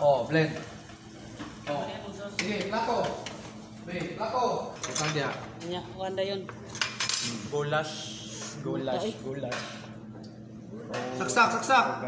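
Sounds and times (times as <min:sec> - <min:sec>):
utensils clinking: 0:04.8 - 0:05.4, 0:06.7 - 0:07.5.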